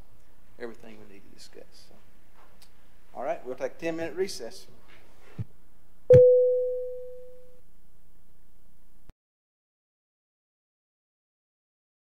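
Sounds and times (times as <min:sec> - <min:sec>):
ringing tone: 0:06.1 - 0:07.6.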